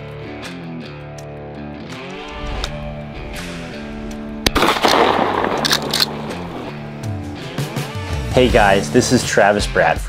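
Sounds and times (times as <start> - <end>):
guitar background music: 0.0 - 10.0
shotgun shots: 4.4 - 7.0.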